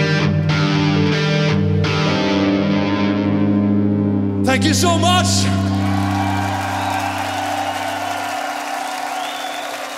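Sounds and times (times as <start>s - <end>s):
crowd applause and cheering: 5.2s - 9.9s.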